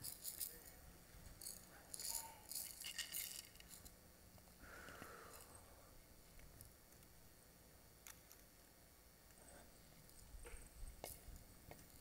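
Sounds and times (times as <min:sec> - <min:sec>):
hand rattle shaken: 0:00.0 - 0:00.7, 0:01.4 - 0:03.9.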